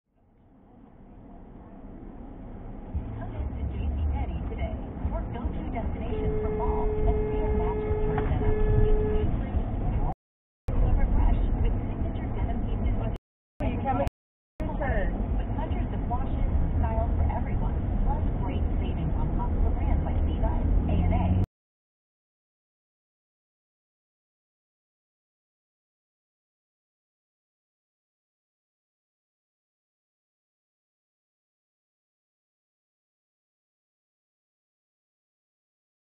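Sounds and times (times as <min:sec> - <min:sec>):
car road noise rumble: 0:00.2 - 0:21.5
car horn blasts: 0:06.0 - 0:09.6.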